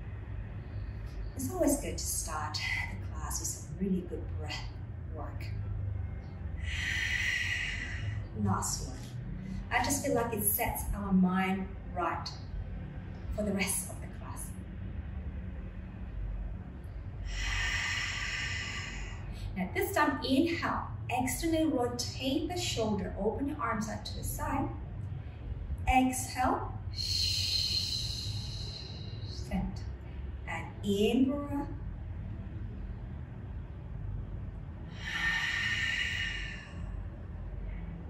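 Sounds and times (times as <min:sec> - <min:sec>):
woman breathing out: 0:06.6 - 0:08.3, 0:17.2 - 0:19.5, 0:34.9 - 0:37.1.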